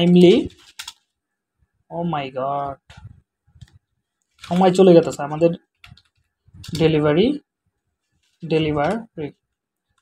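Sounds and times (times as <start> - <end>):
person speaking: 0.0 - 1.0, 1.8 - 7.6, 8.2 - 9.8.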